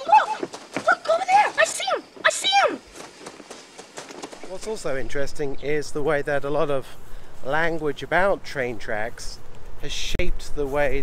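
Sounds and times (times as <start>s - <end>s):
boys shouting excitedly: 0.0s - 3.1s.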